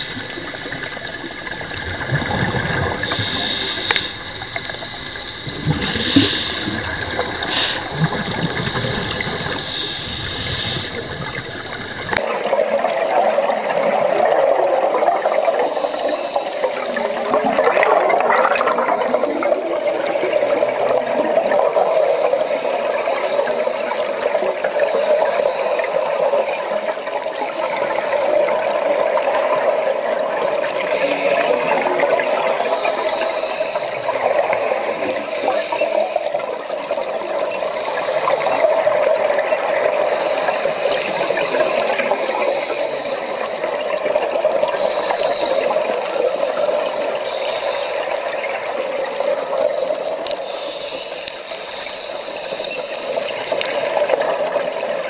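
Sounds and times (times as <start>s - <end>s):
underwater rush of water: 0.0s - 55.0s
faint hisses: 12.4s - 55.0s.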